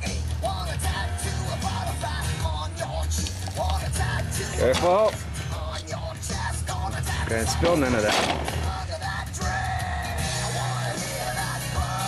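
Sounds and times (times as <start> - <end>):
music with bass line: 0.0 - 12.0.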